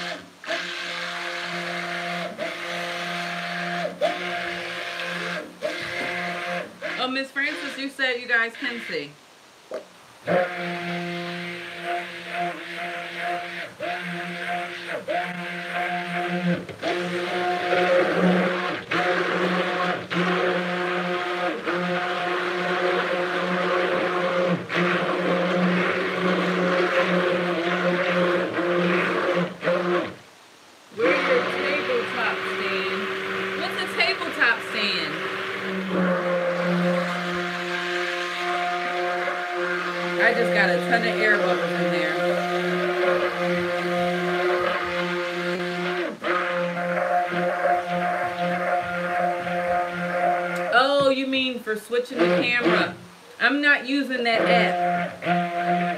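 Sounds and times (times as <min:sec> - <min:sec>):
stick blender running in metal pot: 0:00.0 - 0:09.1, 0:10.3 - 0:30.2, 0:31.0 - 0:51.1, 0:54.3 - 0:55.9.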